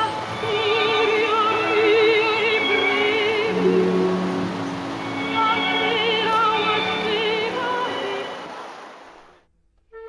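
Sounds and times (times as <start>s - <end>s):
orchestra holding notes: 0.0s - 8.6s
operatic sung note: 2.6s - 8.4s.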